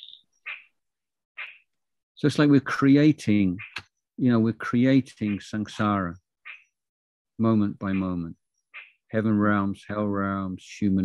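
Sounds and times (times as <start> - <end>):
person speaking: 2.2 - 6.2, 7.4 - 8.4, 9.1 - 11.0.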